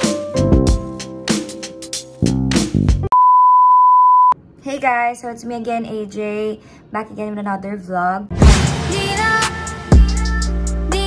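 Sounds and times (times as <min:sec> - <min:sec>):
music with drum beat: 0:00.0 - 0:03.1, 0:08.4 - 0:11.0.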